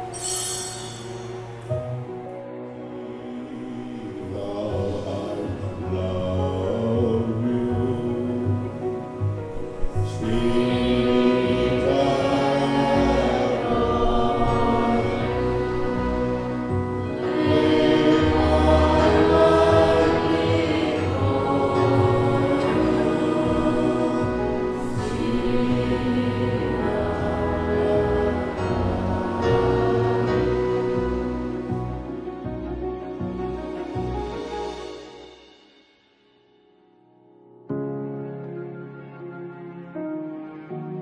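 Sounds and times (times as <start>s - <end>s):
instrumental accompaniment: 0.0s - 4.1s, 7.4s - 41.0s
choir singing a hymn: 0.0s - 32.8s
man singing liturgical chant: 3.4s - 8.8s, 10.1s - 15.0s.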